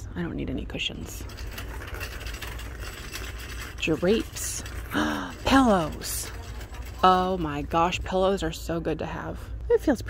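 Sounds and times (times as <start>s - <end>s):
store background rumble and hum: 0.0s - 10.0s.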